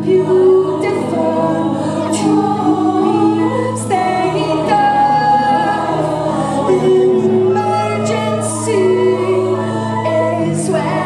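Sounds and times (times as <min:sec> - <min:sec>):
female choir singing: 0:00.0 - 0:11.0.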